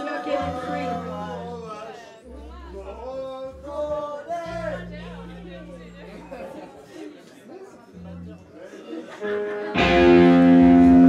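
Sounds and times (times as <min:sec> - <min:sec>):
audience chatter: 0:00.0 - 0:11.0.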